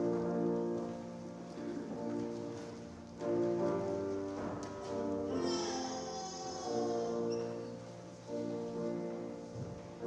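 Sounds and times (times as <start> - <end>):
grand piano chords: 0.0 - 10.0
people shuffling: 0.0 - 10.0.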